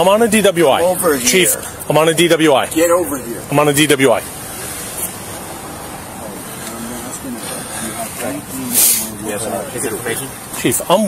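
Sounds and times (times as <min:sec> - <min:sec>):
faint voices talking: 0:00.0 - 0:11.0
steady background noise: 0:00.0 - 0:11.0
short burst of hiss: 0:08.7 - 0:09.1.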